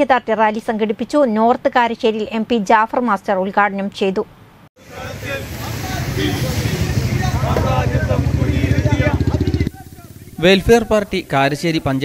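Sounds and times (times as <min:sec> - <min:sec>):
men shouting slogans: 0:04.8 - 0:11.1
vehicle engine rumbling: 0:04.8 - 0:12.0.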